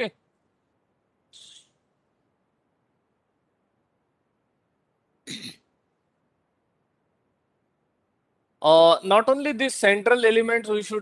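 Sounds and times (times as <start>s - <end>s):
man clearing his throat: 5.2s - 5.7s.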